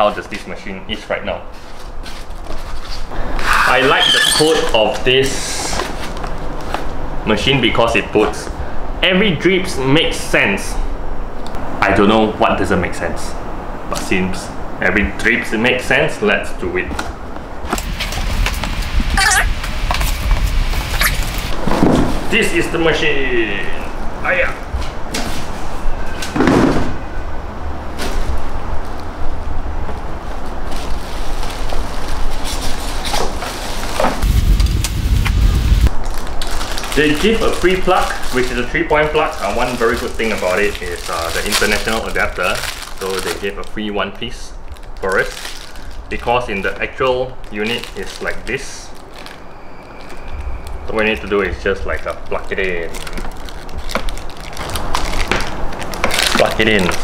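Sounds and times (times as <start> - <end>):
plastic wrapping crinkling: 1.5 - 3.1, 30.4 - 34.6, 35.8 - 57.0
low rumbling scrape: 34.2 - 37.6.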